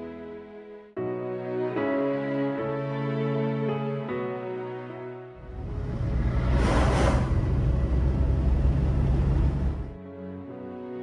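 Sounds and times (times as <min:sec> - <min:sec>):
car engine and tyres rumbling: 0:05.4 - 0:10.0.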